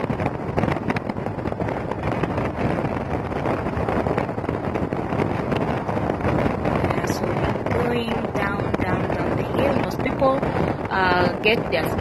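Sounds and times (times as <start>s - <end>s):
car road noise: 0.0s - 12.0s
wind buffeting microphone: 0.0s - 12.0s.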